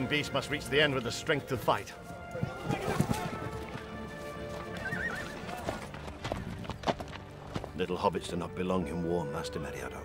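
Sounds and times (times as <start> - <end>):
horse hooves clip-clopping: 0.0 - 7.9
orchestral music: 0.0 - 10.0
horse neighing: 4.7 - 5.6.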